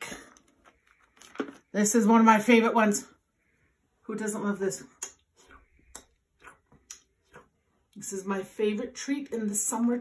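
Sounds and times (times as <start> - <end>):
mouth smacks and lip clicks: 4.9 - 7.8.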